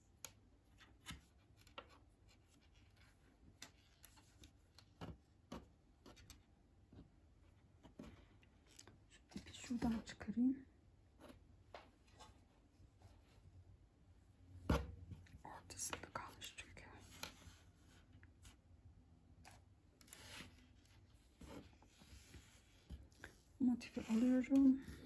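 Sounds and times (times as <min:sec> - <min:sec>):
yarn rustling on a table: 0:19.4 - 0:25.0.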